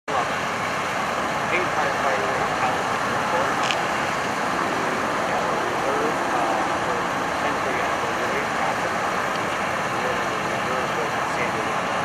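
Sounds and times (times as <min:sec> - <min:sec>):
faint voices: 0:00.0 - 0:00.4, 0:01.5 - 0:12.0
freeway traffic: 0:00.1 - 0:12.0
vehicles idling: 0:00.1 - 0:12.0.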